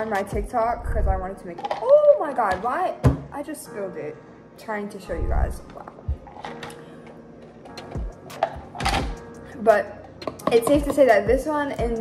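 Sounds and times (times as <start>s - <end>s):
faint background music: 0.0s - 12.0s
soft low thumps: 5.1s - 6.3s.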